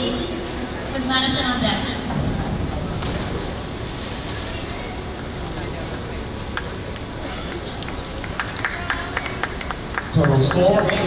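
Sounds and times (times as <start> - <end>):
steady wash of water noise: 0.0 - 11.0.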